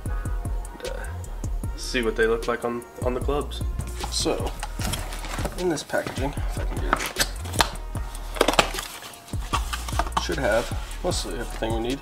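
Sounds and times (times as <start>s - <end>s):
cardboard scraping: 4.0s - 11.7s
cardboard snaps: 6.8s - 7.8s, 8.4s - 10.3s.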